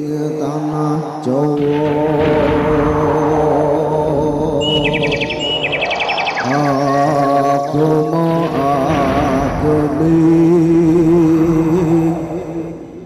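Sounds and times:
rapid high trilling chirp: 0:04.6 - 0:08.2.

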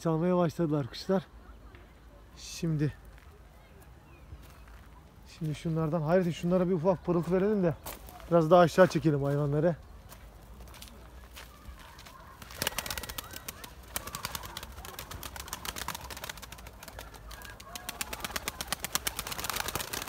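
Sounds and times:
wing flutters: 0:12.2 - 0:20.0.

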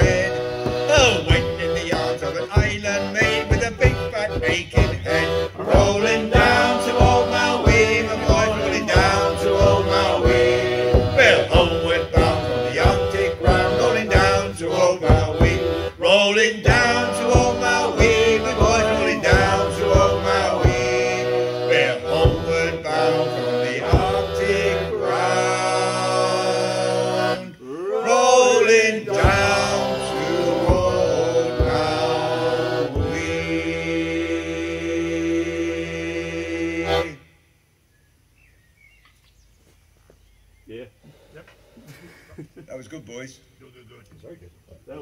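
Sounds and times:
frame drum strokes: 0:00.0 - 0:22.8, 0:23.8 - 0:24.6, 0:29.1 - 0:33.7
men singing a sea shanty: 0:00.0 - 0:37.3.

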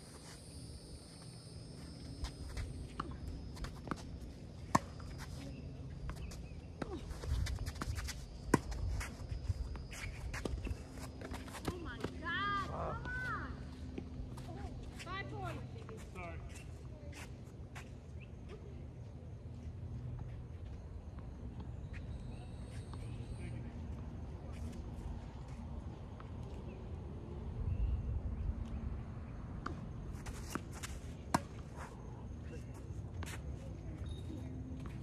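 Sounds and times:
footsteps on hard court: 0:02.1 - 0:16.2.

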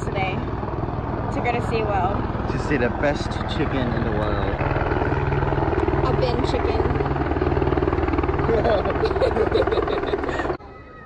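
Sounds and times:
helicopter rotor beat: 0:00.0 - 0:11.0.

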